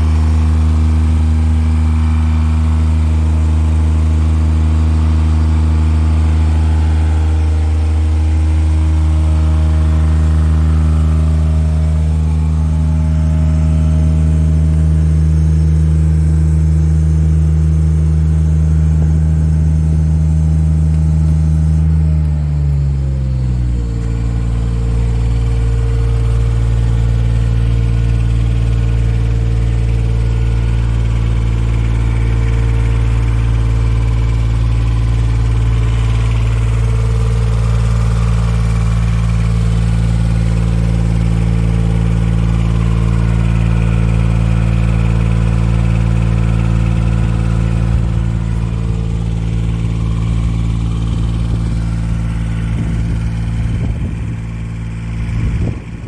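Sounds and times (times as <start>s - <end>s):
engine idling: 0.0s - 56.0s.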